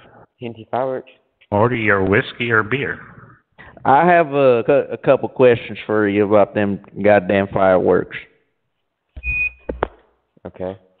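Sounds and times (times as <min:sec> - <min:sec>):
high electronic beep: 0:09.2 - 0:09.8.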